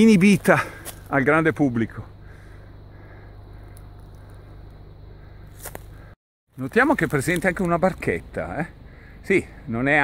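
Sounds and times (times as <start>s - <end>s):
faint low hum: 0.0s - 6.1s
quiet outdoor background noise: 0.0s - 10.0s
faint ticks: 3.6s - 4.8s.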